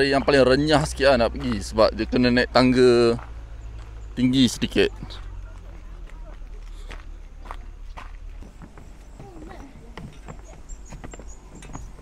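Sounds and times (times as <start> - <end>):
footsteps on gravel: 0.4 - 12.0
faint voices: 1.4 - 12.0.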